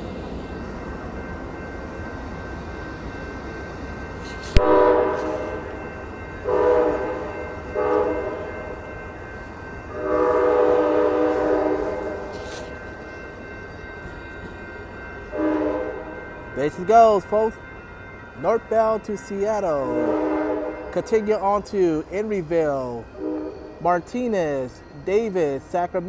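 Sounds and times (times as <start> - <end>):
locomotive horn blasts: 4.5 - 5.6, 6.4 - 8.5, 9.9 - 12.6, 15.3 - 16.1, 19.8 - 21.0, 23.2 - 23.8.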